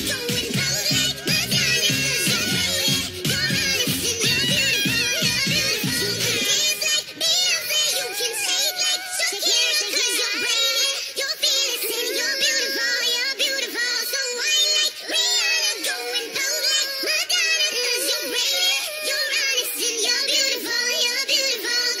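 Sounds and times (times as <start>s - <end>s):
electronic pop backing track: 0.0s - 22.0s
sped-up female vocals singing: 0.0s - 22.0s.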